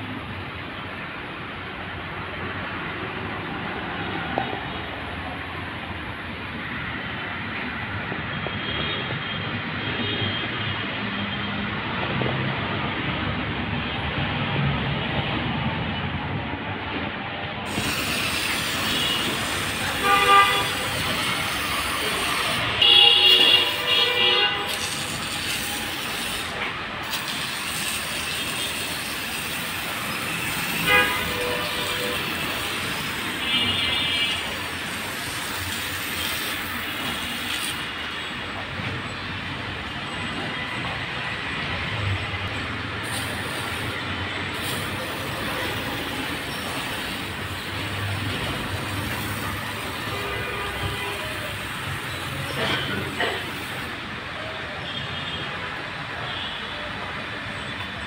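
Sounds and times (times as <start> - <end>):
pressure sprayer hissing: 17.7 - 38.3, 42.5 - 54.0.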